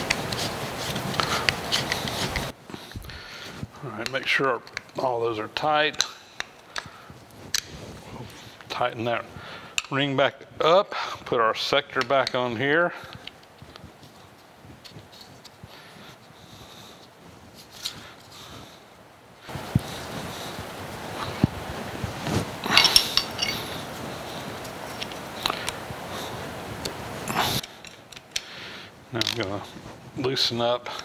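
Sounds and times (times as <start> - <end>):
metal scraping and handling noise: 0.0 - 2.6, 22.1 - 25.8, 29.1 - 30.5
small metal clicks and clinks: 22.7 - 23.8.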